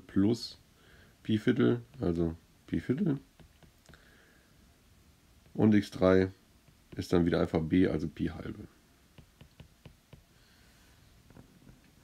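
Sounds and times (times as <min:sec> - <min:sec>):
stylus tapping on glass screen: 0:03.3 - 0:04.0, 0:09.1 - 0:10.3.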